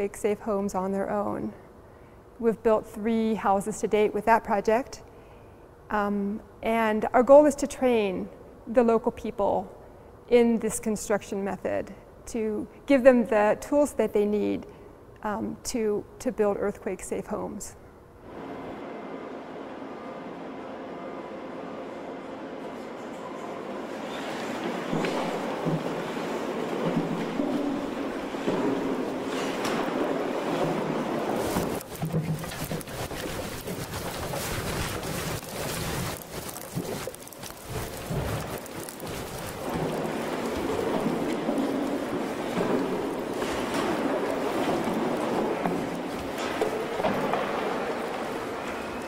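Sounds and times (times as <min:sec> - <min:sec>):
shake table rumbling and rattling: 0:24.6 - 0:49.0
plaster cracking and crumbling: 0:24.9 - 0:49.0.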